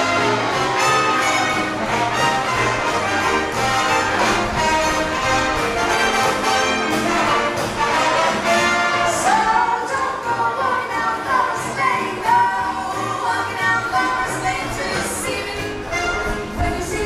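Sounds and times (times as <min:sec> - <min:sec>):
live band with brass: 0:00.0 - 0:12.0, 0:14.0 - 0:17.0
bass line: 0:00.0 - 0:17.0
drums: 0:00.0 - 0:17.0.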